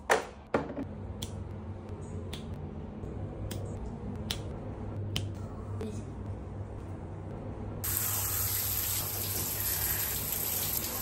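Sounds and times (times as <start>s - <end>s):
finger snaps: 1.2s - 1.4s, 2.2s - 2.6s, 3.4s - 5.4s.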